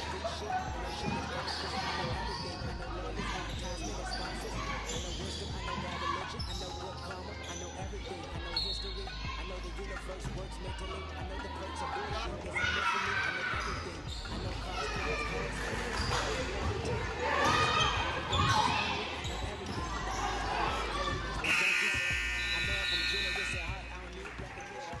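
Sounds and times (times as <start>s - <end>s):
crowd shouting and cheering: 0.0s - 25.0s
scoreboard horn: 21.4s - 24.0s.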